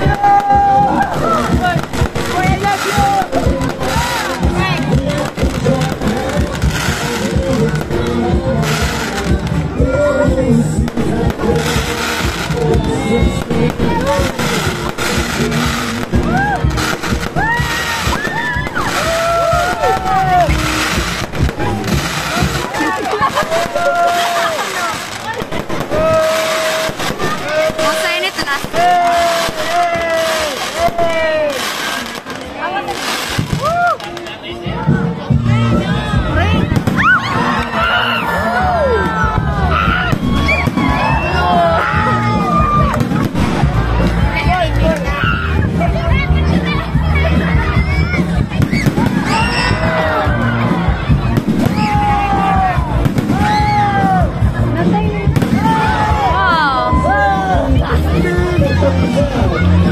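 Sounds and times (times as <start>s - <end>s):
fireworks bursting: 0.0s - 34.4s, 36.4s - 37.8s, 39.1s - 58.3s
music with sung vocals: 0.0s - 59.9s.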